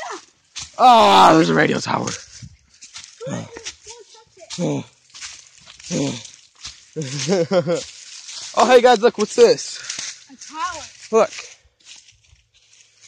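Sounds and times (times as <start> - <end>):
footsteps crunching through leaves: 0.0 - 13.0.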